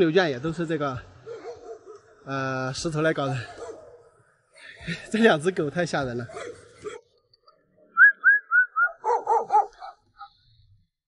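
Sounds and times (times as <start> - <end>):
dogs barking: 1.2 - 2.3, 3.2 - 4.3, 6.2 - 7.1, 8.9 - 10.3
high-pitched dog yelps: 8.9 - 10.3.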